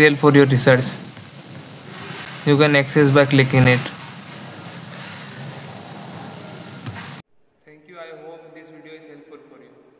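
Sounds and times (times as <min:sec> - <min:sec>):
background hiss: 0:00.0 - 0:09.9.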